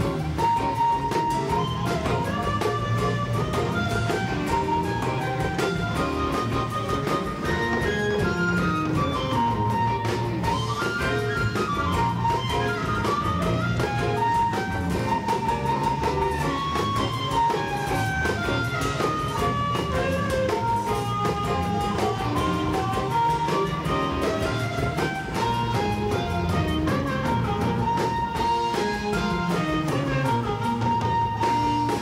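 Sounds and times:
amplified blues harmonica solo: 0.0 - 32.0
drums: 0.0 - 32.0
electric guitar: 0.0 - 32.0.

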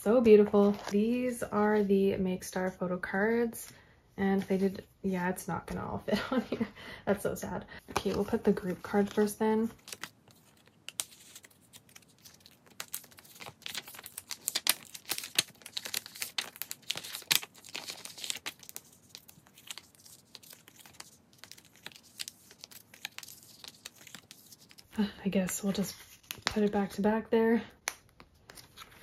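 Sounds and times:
plastic sleeves crinkling: 7.9 - 26.8.

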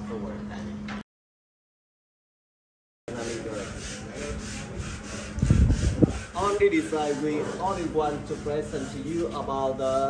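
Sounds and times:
rhythmic rubbing strokes: 3.1 - 10.0
steady low hum: 3.1 - 10.0.

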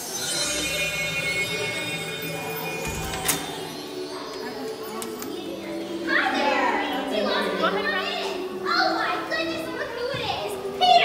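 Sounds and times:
background music with held notes: 0.0 - 11.0
child's high-pitched voice: 4.1 - 11.0.

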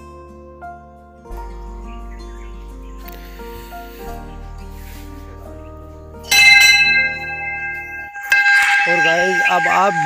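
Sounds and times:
background music: 0.0 - 10.0
brass bell ringing: 6.3 - 10.0.

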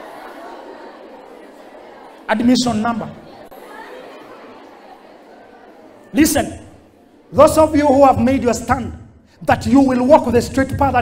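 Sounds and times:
audience chatter: 0.0 - 8.6
amplified speaker talking: 2.3 - 3.3, 6.1 - 11.0.

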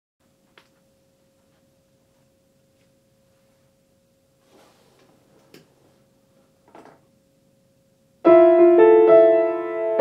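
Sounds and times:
soft rustle of movement: 1.3 - 3.8, 4.4 - 6.6.

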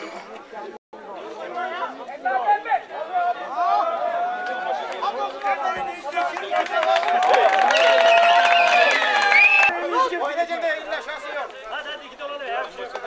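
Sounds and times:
crowd talking: 0.0 - 13.0.

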